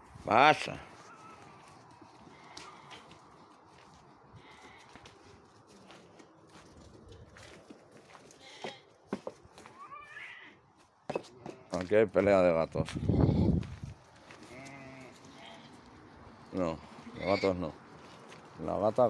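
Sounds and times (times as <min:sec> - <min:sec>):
sheep shuffling on straw and stones: 0:00.0 - 0:19.0
faint animal call: 0:01.0 - 0:01.6, 0:09.6 - 0:10.6
hoof knocks: 0:07.6 - 0:09.8, 0:10.8 - 0:12.3.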